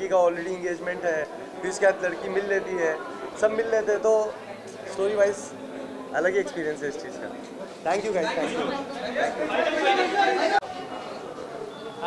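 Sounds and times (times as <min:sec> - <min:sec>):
man speaking: 0:00.0 - 0:10.6
people chattering: 0:00.0 - 0:12.0.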